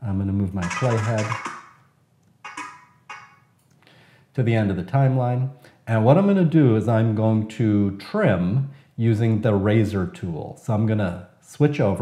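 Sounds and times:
man breathing softly: 3.8s - 4.3s.

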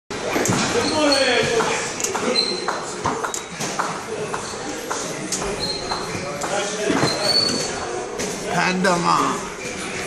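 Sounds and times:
high-pitched squeak: 7.0s - 7.9s.

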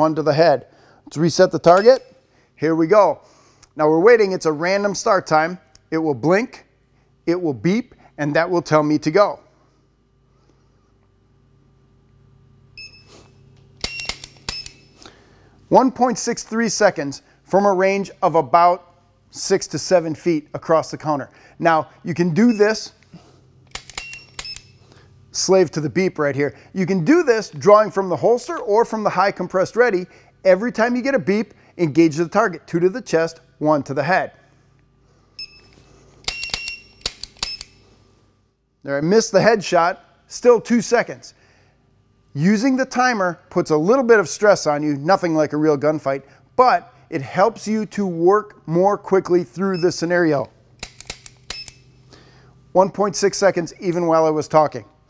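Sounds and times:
shot timer beep: 12.8s - 13.1s, 35.4s - 37.7s
short electronic beeps: 35.4s - 35.8s
pistol trigger clicks: 36.3s - 37.8s.

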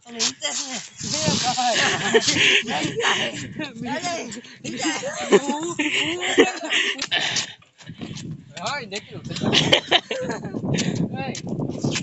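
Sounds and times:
short hissing burst: 1.0s - 1.8s.

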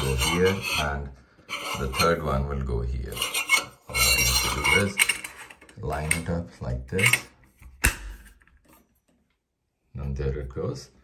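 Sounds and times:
metal cover scraping on plate: 0.0s - 2.4s, 3.1s - 6.2s, 6.9s - 7.4s.

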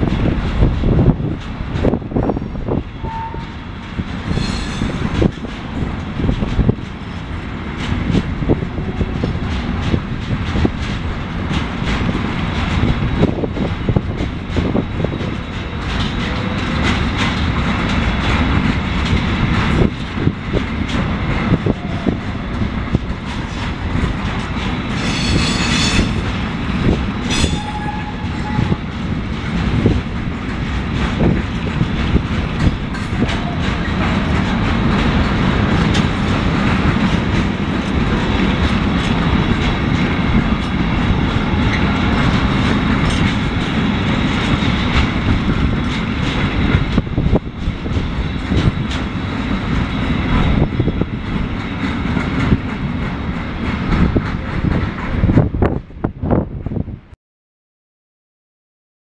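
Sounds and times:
wheels clattering over rail joints: 0.0s - 55.5s
train wagons rumbling past: 0.0s - 57.0s
high wheel squeal: 4.3s - 4.9s, 25.0s - 26.2s, 27.3s - 28.8s.

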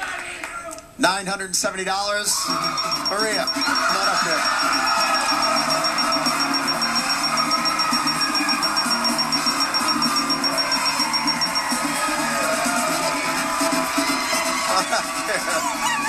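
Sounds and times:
studio audience cheering and clapping: 0.0s - 0.9s, 2.0s - 16.0s
game-show music cue: 2.4s - 16.0s.

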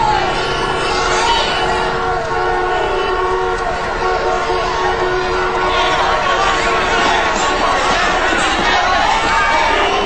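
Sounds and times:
air-raid sirens steady tone: 0.0s - 10.0s.

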